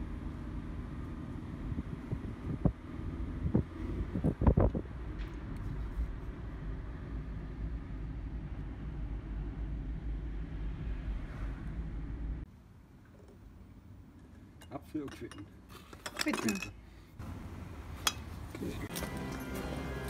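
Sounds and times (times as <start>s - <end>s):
car road and engine rumble: 0.0s - 20.0s.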